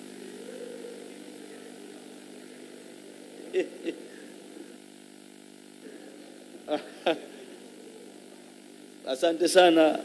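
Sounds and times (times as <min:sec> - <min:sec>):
electrical hum of sound system: 0:00.0 - 0:10.0.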